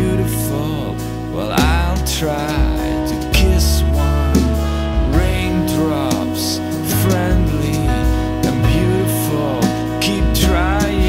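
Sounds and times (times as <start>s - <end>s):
jazz band playing: 0.0s - 11.0s.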